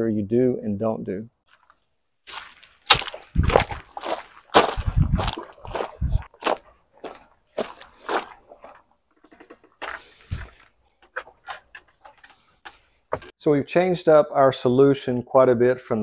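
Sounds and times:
footsteps on gravel: 0:01.5 - 0:13.3.

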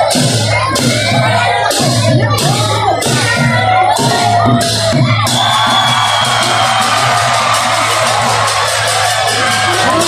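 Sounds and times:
crowd shouting and whooping: 0:00.0 - 0:10.0
drums and clashing cymbals: 0:00.0 - 0:10.0.

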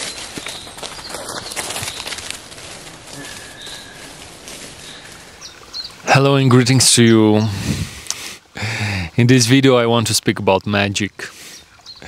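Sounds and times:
steady rushing hiss: 0:02.1 - 0:11.8
faint bird chirps: 0:03.2 - 0:04.2.

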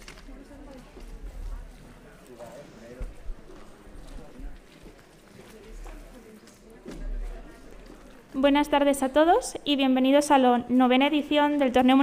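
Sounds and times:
faint murmur of voices: 0:00.0 - 0:09.0.

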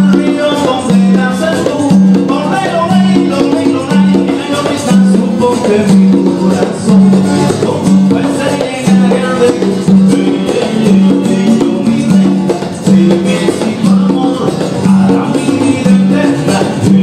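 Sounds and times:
bass line: 0:00.0 - 0:17.0
light percussion: 0:00.0 - 0:17.0
plucked acoustic-electric guitar: 0:00.0 - 0:17.0.

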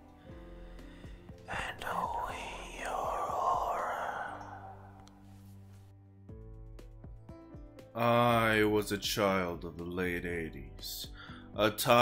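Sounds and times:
background music low notes: 0:00.0 - 0:12.0
breathy whispered voice effect: 0:01.4 - 0:05.4.

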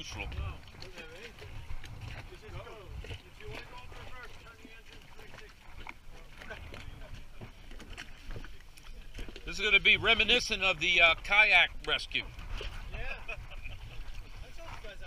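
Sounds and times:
faint voices talking: 0:00.0 - 0:13.3.

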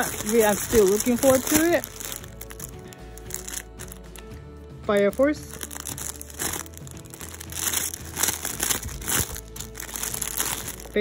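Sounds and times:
plastic bags crinkling: 0:00.0 - 0:04.3, 0:05.0 - 0:11.0.

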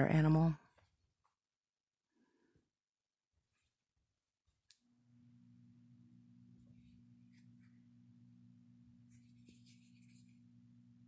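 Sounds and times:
faint low hum: 0:04.7 - 0:11.0.

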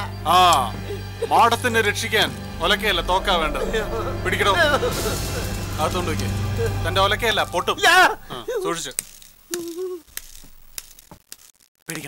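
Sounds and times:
steady low tone: 0:00.0 - 0:08.6.

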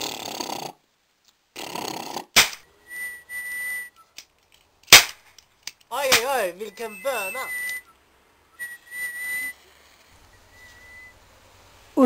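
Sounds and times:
comic fart noises: 0:00.0 - 0:00.8, 0:01.5 - 0:02.5
sharp loud bangs: 0:02.4 - 0:02.7, 0:04.9 - 0:05.3, 0:06.0 - 0:06.5.

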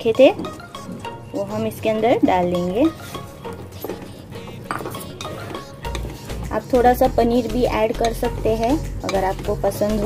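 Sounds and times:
soft background music: 0:00.0 - 0:10.0
spatula stirring thick gravy: 0:02.4 - 0:10.0
spatula knocking against pot: 0:03.9 - 0:06.5, 0:07.9 - 0:10.0.

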